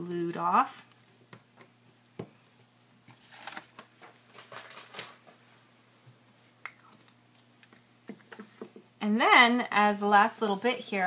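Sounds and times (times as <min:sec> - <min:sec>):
paper rustling: 0:03.1 - 0:05.4.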